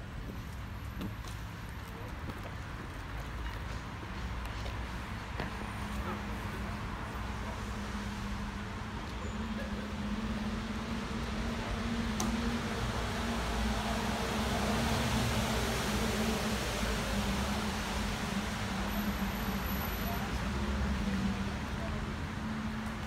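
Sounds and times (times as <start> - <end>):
city traffic noise: 0.0 - 23.0.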